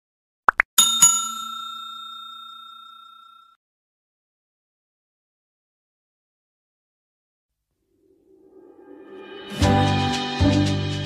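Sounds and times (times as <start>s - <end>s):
bell ringing: 0.8s - 3.6s.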